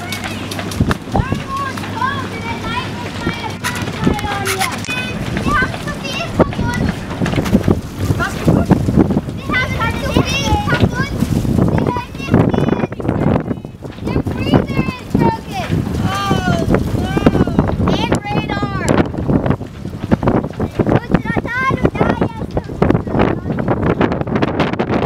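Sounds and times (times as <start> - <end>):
people's voices: 0.0 - 19.3, 20.0 - 24.3
wind buffeting microphone: 0.0 - 25.0.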